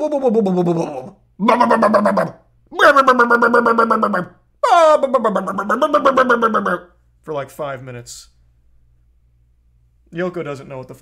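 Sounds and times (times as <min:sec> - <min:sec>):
man wailing cries: 0:00.0 - 0:06.8.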